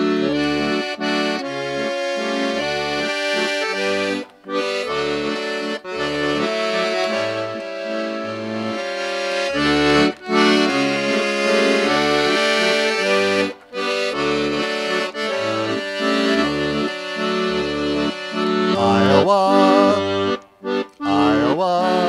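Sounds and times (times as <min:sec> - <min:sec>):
accordion playing waltz: 0:00.0 - 0:22.0.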